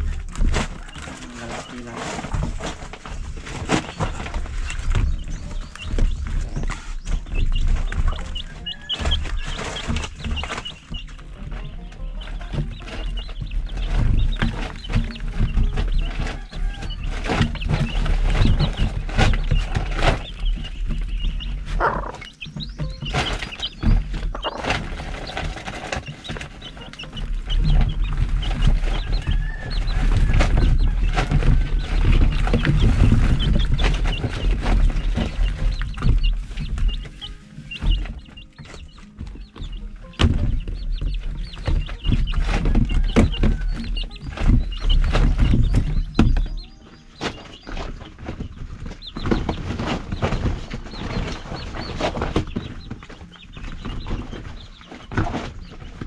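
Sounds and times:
chickens clucking: 0:00.0 - 0:56.0
knocks and rustles: 0:00.0 - 0:56.0.

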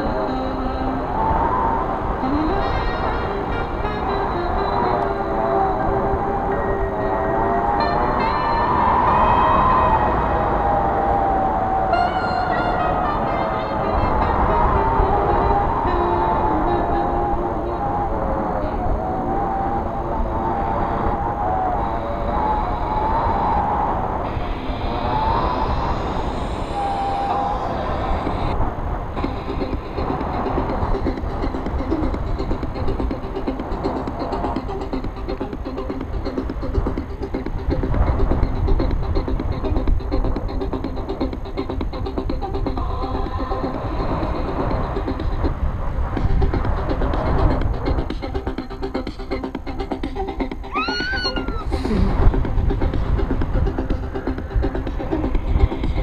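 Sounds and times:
music with wavering melody: 0:00.0 - 0:56.0
wind buffeting microphone: 0:00.0 - 0:56.0.

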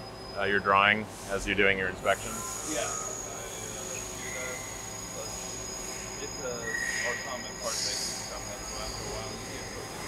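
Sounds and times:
high-pitched machine whines: 0:00.0 - 0:10.0
machines humming: 0:00.0 - 0:10.0.

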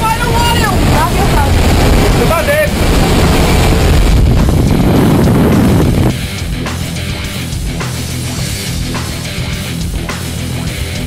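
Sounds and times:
airplane engine and propeller noise: 0:00.0 - 0:11.0.

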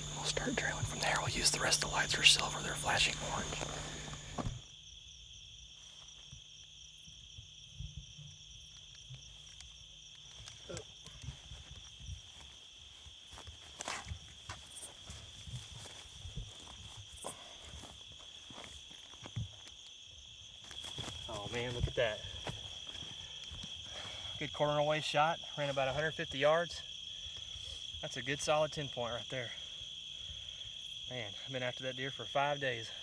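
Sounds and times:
insects chirring: 0:00.0 - 0:33.0
footsteps through brush: 0:09.4 - 0:19.9, 0:20.5 - 0:23.9.

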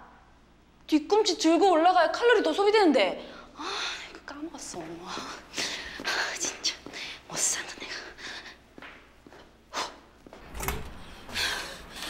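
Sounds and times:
woman whispering: 0:03.6 - 0:08.6
faint footsteps on stairs: 0:04.6 - 0:11.6
heavy breathing: 0:11.0 - 0:12.0.

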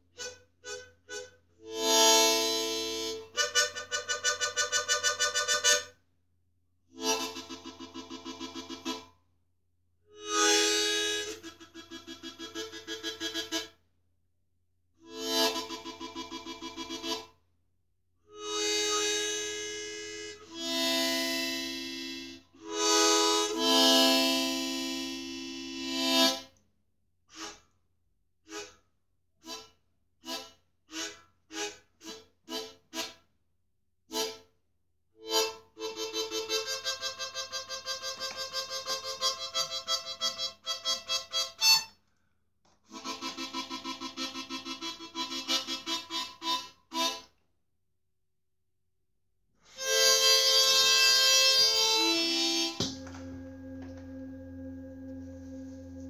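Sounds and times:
harmonica playing chords: 0:00.0 - 0:06.0, 0:07.0 - 0:09.1, 0:10.1 - 0:13.7, 0:15.0 - 0:17.3, 0:18.3 - 0:26.5, 0:28.5 - 0:28.8, 0:29.4 - 0:33.2, 0:34.1 - 0:34.5, 0:35.2 - 0:41.9, 0:42.9 - 0:47.4, 0:49.6 - 0:56.0
harmonica short pulsed notes: 0:49.7 - 0:56.0.

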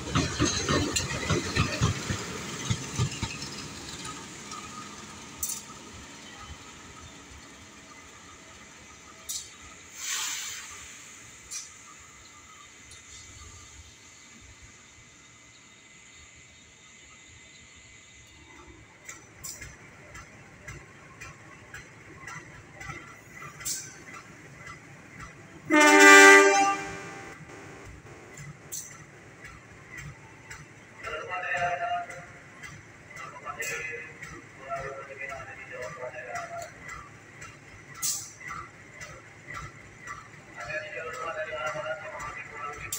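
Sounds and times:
wheels clicking over track: 0:00.0 - 0:08.6, 0:18.3 - 0:42.9
locomotive passing: 0:00.0 - 0:42.9
train horn blast: 0:25.7 - 0:27.4.

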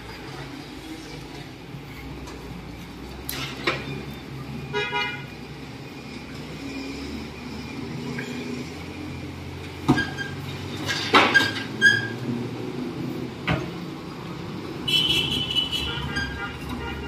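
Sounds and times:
vehicle horn toot: 0:04.7 - 0:05.3, 0:14.9 - 0:17.0.

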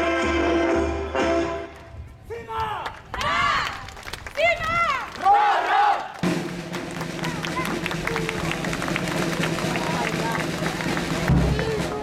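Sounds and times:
crowd noise: 0:01.2 - 0:12.0
voices: 0:07.0 - 0:12.0.

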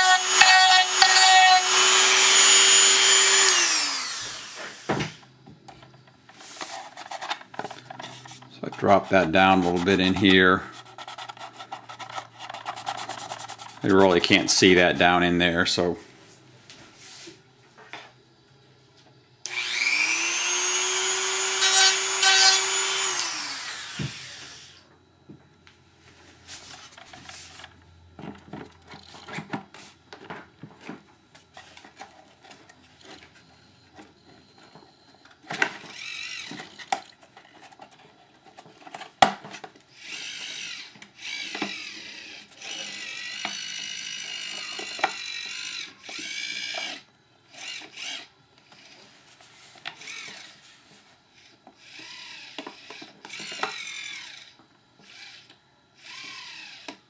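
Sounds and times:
small electric motor whirring: 0:00.0 - 0:05.2, 0:19.5 - 0:24.9, 0:35.8 - 0:36.9, 0:39.9 - 0:49.2, 0:49.9 - 0:50.7, 0:51.3 - 0:57.0
plastic shell scraping: 0:06.3 - 0:14.4
plastic parts clicking and knocking: 0:33.9 - 0:41.9, 0:44.3 - 0:46.9, 0:51.6 - 0:53.9.

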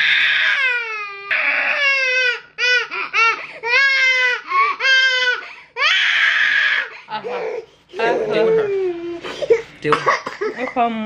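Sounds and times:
baby crying: 0:00.0 - 0:09.7.

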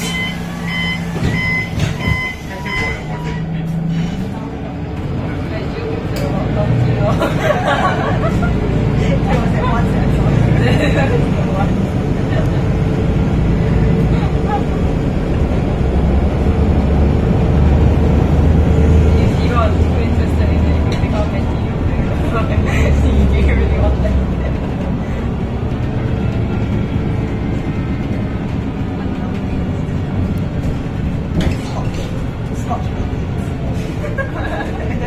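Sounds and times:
bus engine drone: 0:00.0 - 0:35.0
road noise: 0:00.0 - 0:35.0.

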